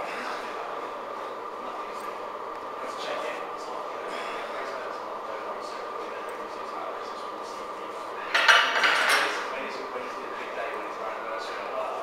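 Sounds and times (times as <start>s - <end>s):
metal clatter of weights: 8.3s - 9.4s.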